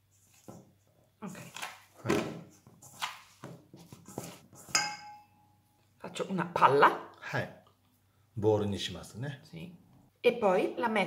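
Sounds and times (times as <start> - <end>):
metal bowl ringing: 4.8 - 5.6.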